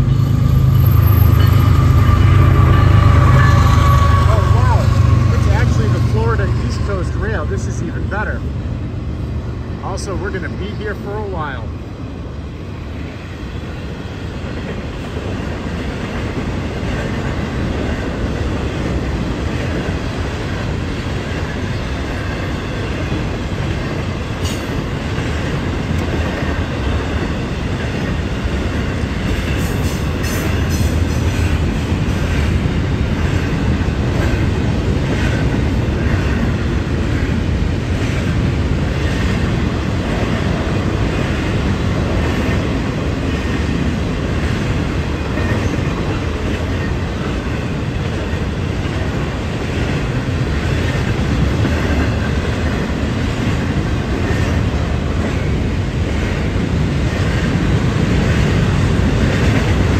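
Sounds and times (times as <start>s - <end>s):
freight train rolling past: 0.0s - 59.9s.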